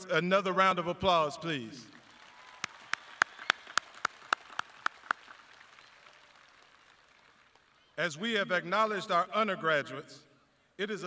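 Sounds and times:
distant audience applause: 0:02.0 - 0:08.0
person clapping: 0:02.6 - 0:07.7.

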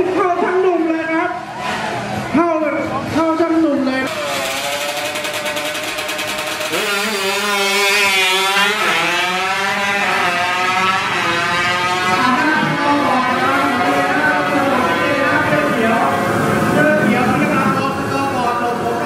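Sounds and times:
scooter engine at high revs: 0:04.0 - 0:19.0.

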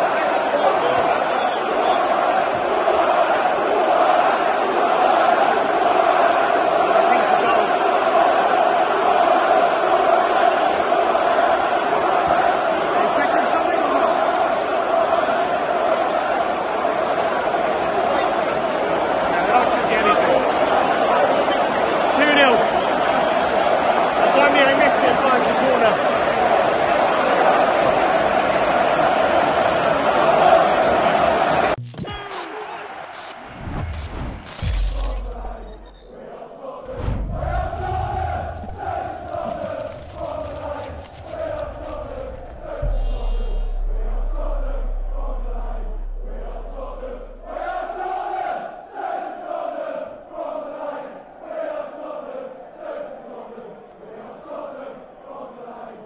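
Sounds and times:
stadium crowd chanting and cheering: 0:00.0 - 0:56.0
sound-effect hits and low booms: 0:41.3 - 0:48.2
outro music track: 0:41.6 - 0:48.4.

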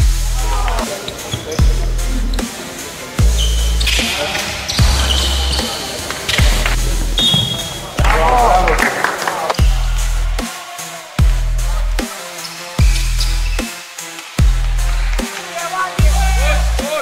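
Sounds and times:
electronic music: 0:00.0 - 0:17.0.

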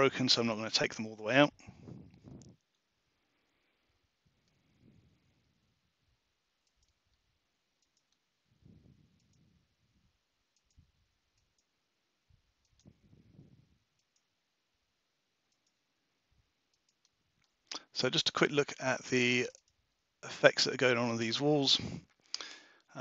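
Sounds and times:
faint computer mouse clicks: 0:06.6 - 0:07.2, 0:07.8 - 0:08.2, 0:15.5 - 0:15.8, 0:16.7 - 0:17.8.

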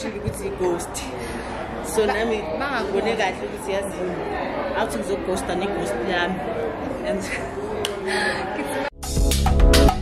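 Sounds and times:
indoor crowd chatter: 0:00.0 - 0:09.0.

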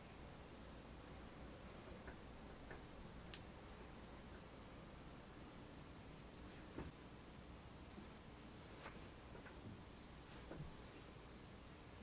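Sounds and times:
faint light clicks: 0:02.0 - 0:03.5.

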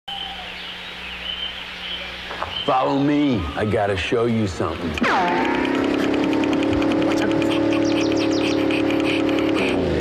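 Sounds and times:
rapid high pulses: 0:02.7 - 0:10.0.

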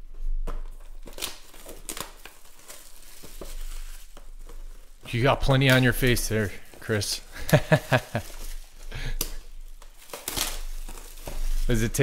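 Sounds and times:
plastic shrink wrap crinkling: 0:00.0 - 0:12.0.

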